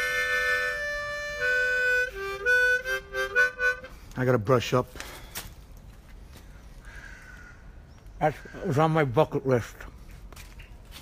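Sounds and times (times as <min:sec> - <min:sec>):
harmonica playing slow melody: 0:00.0 - 0:04.2.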